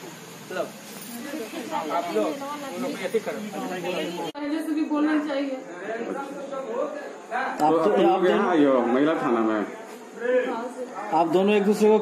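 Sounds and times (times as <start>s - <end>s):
steady hiss: 0.0s - 4.4s.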